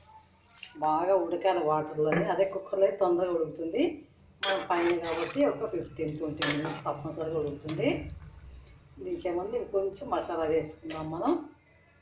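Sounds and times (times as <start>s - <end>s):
metal spoon clinking on a pot: 4.4s - 7.9s.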